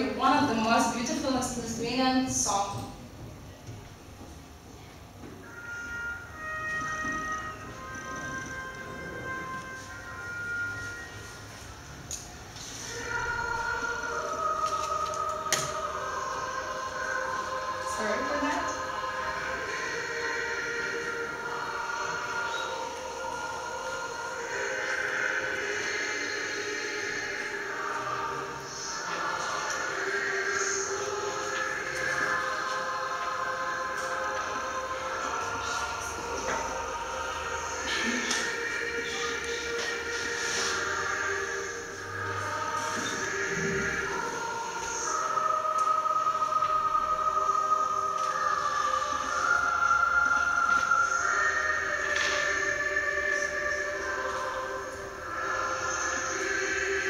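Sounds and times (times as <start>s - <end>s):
song over loudspeakers: 0.0s - 4.4s, 5.1s - 57.0s
choir singing held chords: 0.0s - 57.0s.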